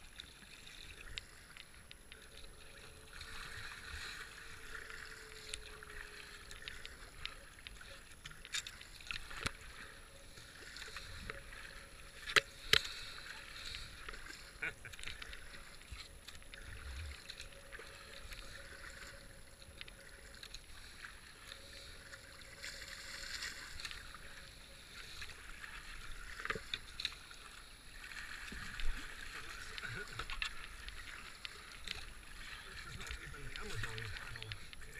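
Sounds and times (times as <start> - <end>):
kayak paddle splashing: 0.0 - 34.9.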